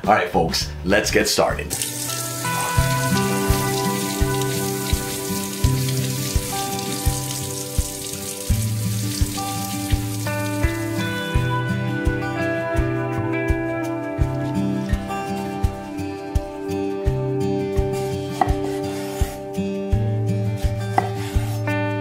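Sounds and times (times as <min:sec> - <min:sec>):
tap water running into sink: 0:01.7 - 0:10.9
guitar music with steady beat: 0:01.8 - 0:22.0.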